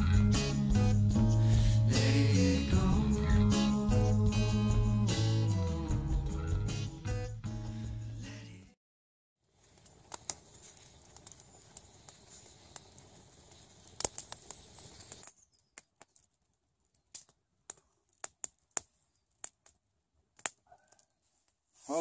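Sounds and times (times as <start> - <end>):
campfire crackling and popping: 9.4 - 21.6.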